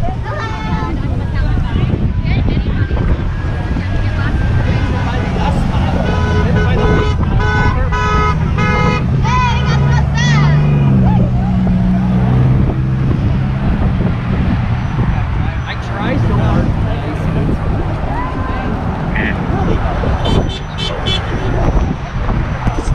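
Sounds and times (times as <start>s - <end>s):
passing road traffic: 0.0s - 22.9s
car horn beeping: 5.8s - 10.9s, 20.2s - 21.9s.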